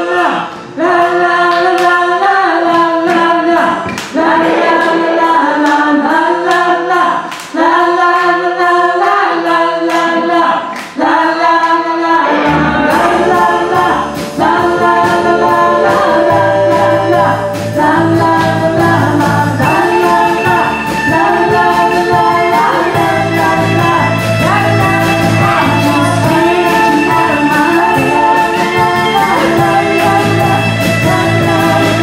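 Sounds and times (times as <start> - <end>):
sung vocals on held notes: 0.0 - 32.0
bass line: 12.2 - 32.0
percussive beat: 12.3 - 32.0.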